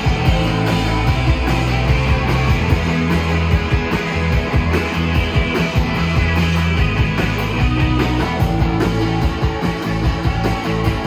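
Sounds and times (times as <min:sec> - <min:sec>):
bass line: 0:00.0 - 0:11.0
distorted electric guitars: 0:00.0 - 0:11.0.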